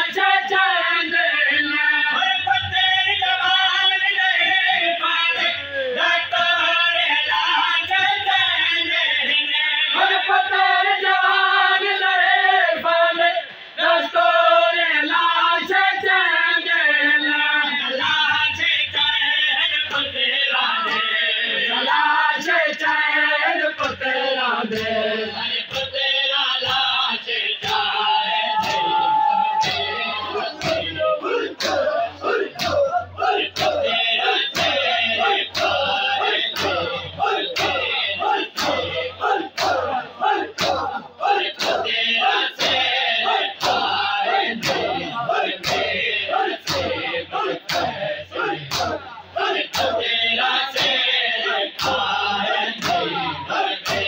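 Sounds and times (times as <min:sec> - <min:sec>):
men chanting: 0:00.0 - 0:54.0
hands slapping chests: 0:32.5 - 0:32.8, 0:40.5 - 0:40.8, 0:41.6 - 0:41.8, 0:48.7 - 0:49.0.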